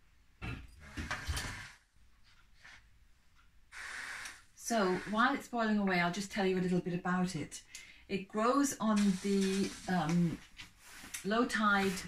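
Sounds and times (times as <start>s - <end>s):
saucepan scraping on hotplate: 9.0s - 10.4s.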